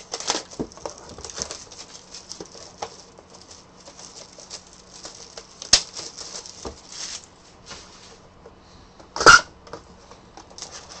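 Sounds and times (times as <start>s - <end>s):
packaging crinkling and rustling: 0.0s - 7.4s.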